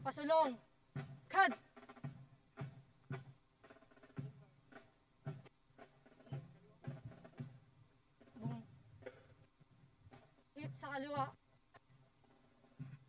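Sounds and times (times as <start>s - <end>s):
faint marching drum beat: 0.0s - 13.0s.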